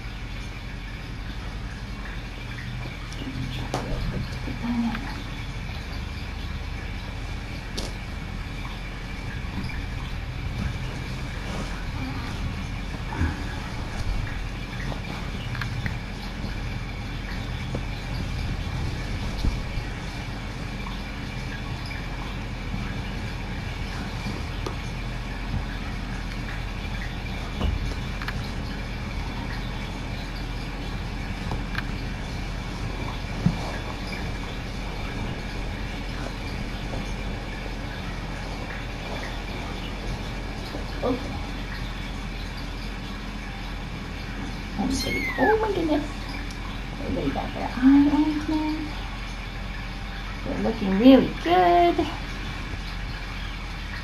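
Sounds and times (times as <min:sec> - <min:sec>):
low hum: 0:00.0 - 0:54.0.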